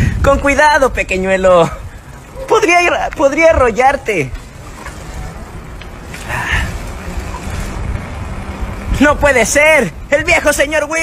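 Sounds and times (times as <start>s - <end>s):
low street rumble with hum: 0.0s - 11.0s.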